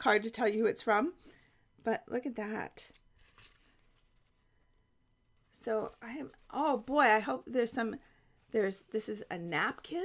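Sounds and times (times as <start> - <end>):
paper napkin rustle: 2.8 - 10.0.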